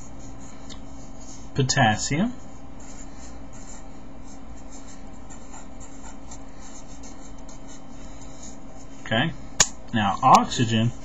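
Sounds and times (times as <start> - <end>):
steady low hum: 0.0 - 11.0
marker pen writing on paper: 2.4 - 9.1.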